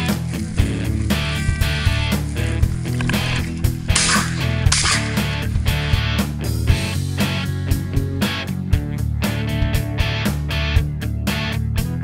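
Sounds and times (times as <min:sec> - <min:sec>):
rock music with electric guitar: 0:00.0 - 0:12.0
shotgun shots: 0:03.9 - 0:05.8.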